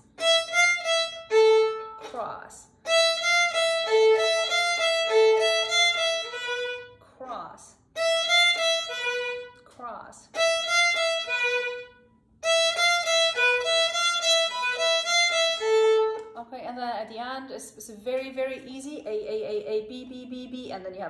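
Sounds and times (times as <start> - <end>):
solo violin melody: 0.0 - 7.0, 8.0 - 9.6, 10.3 - 16.3.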